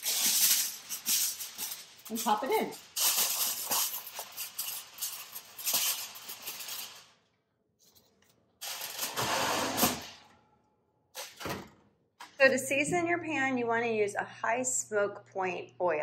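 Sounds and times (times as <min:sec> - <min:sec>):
aluminium foil crinkling: 0:00.0 - 0:10.1.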